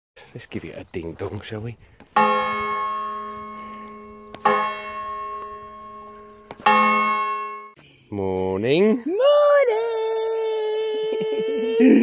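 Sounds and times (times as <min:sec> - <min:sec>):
bell ringing: 0:02.2 - 0:07.8.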